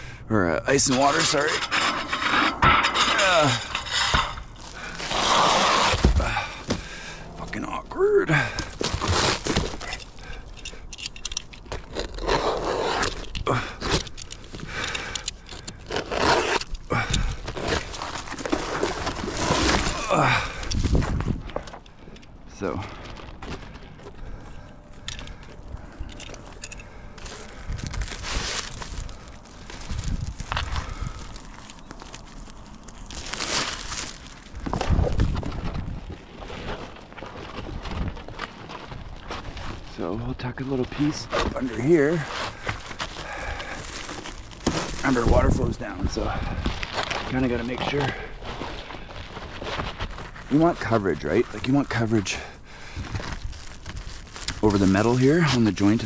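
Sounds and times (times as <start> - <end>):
membrane crinkling: 0.7 - 56.0
scraping and clattering: 0.8 - 7.5.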